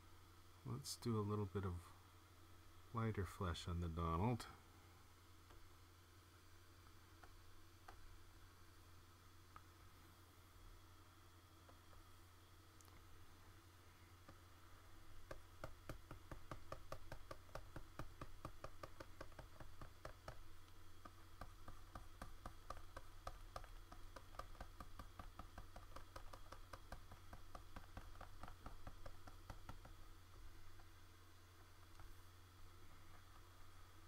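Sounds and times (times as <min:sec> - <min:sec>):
low steady hum: 0:00.0 - 0:34.0
stylus tapping on tablet: 0:07.2 - 0:08.1, 0:15.2 - 0:30.1.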